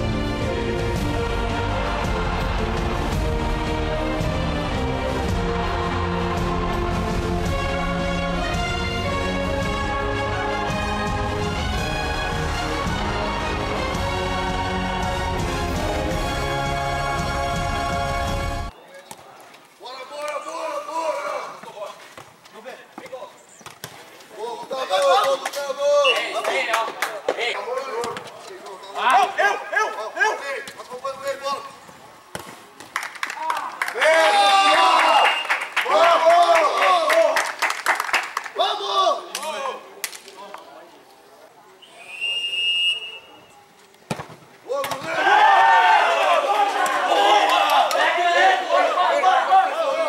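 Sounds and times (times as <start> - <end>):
referee's whistle: 26.0 - 26.4, 35.1 - 35.7, 41.8 - 43.6
people shouting: 33.4 - 37.1, 44.7 - 50.0
football kicked and bouncing on turf: 44.1 - 45.1.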